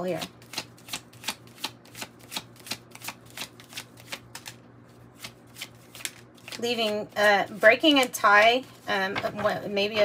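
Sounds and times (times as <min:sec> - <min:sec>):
cards shuffled by hand: 0:00.2 - 0:08.9.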